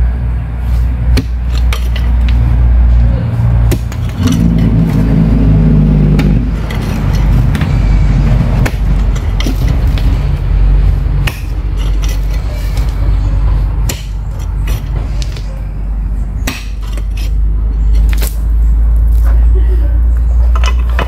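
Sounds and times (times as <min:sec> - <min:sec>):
hum: 0:00.0 - 0:19.2
low engine-like rumble: 0:00.0 - 0:21.0
pickaxe striking stony ground: 0:01.1 - 0:02.1, 0:03.7 - 0:05.0, 0:08.6 - 0:10.1, 0:11.2 - 0:12.9, 0:13.8 - 0:15.4, 0:16.4 - 0:17.4.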